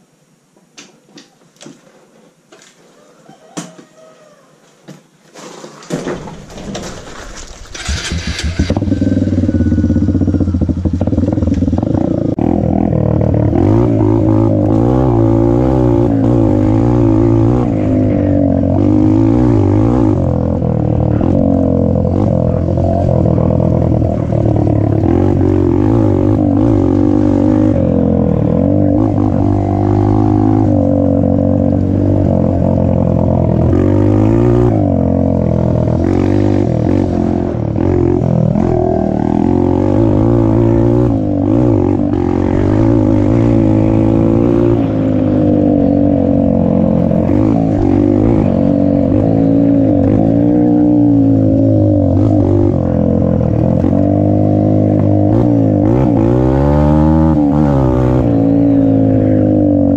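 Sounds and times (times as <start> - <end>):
dirt bike engine revving: 6.8 - 59.9.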